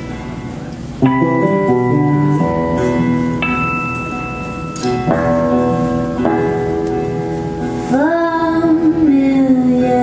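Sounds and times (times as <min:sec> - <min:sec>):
acoustic guitar chord ringing: 0:01.0 - 0:08.8.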